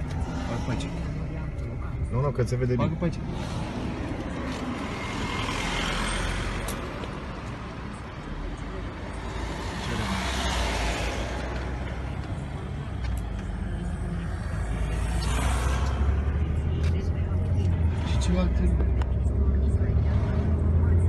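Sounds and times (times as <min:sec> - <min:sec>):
car engine and tyres rumbling: 0:00.0 - 0:21.0.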